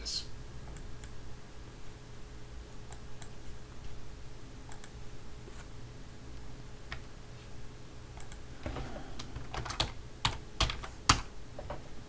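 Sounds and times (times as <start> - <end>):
typing on a keyboard: 9.5 - 11.3.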